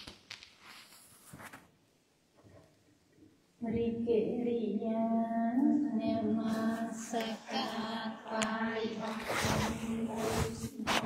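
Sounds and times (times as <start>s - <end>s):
women chanting through a microphone: 3.6s - 11.0s.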